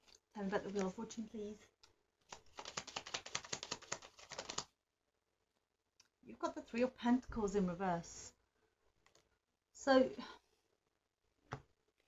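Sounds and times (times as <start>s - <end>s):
cards being shuffled: 2.3s - 4.7s.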